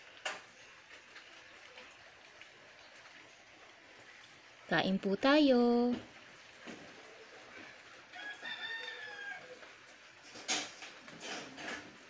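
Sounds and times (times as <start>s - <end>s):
rooster crowing: 8.1s - 9.7s.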